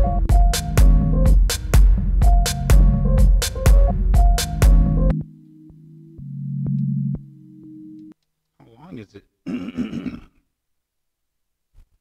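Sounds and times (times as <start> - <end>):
low synth chord with ticks: 2.4 - 8.2.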